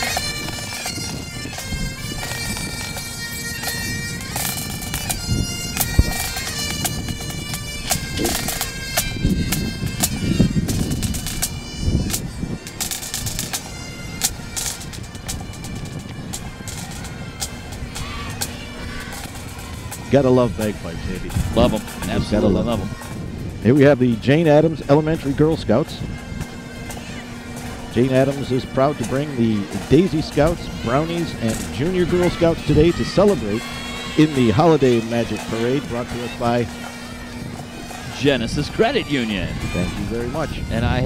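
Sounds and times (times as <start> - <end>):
bagpipes playing a tune: 0.0 - 41.0
drum strokes: 0.0 - 41.0.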